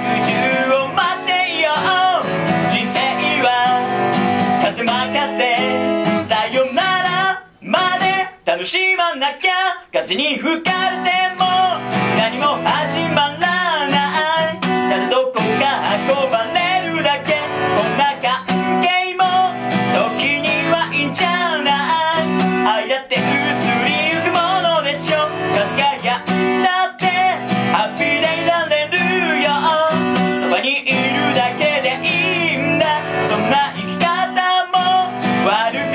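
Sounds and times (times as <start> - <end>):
acoustic guitar strumming: 0.0 - 35.9
person singing: 0.0 - 35.9.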